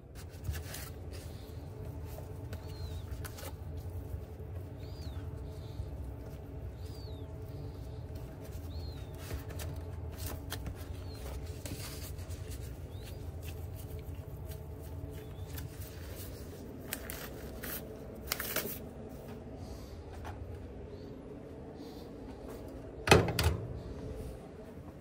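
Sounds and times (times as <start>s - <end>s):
kitchen machine hum: 0.0s - 25.0s
paper rustling: 0.1s - 18.9s.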